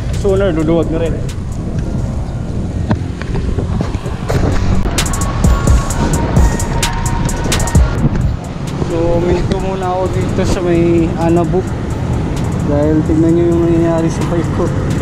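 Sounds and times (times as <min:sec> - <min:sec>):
traffic: 0:00.0 - 0:15.0
wind rumbling on microphone: 0:00.0 - 0:15.0.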